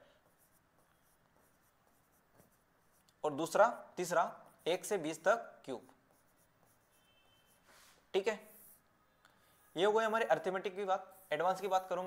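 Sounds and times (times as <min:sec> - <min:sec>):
stylus strokes on display: 0:00.0 - 0:12.0.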